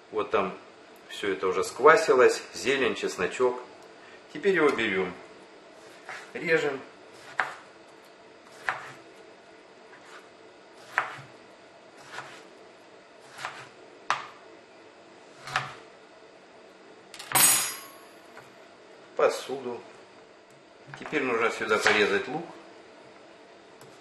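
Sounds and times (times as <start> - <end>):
knife slicing soft food: 5.8 - 6.4, 7.1 - 7.7, 8.4 - 9.1, 9.9 - 11.4, 12.0 - 12.5, 13.2 - 14.4, 15.4 - 15.9.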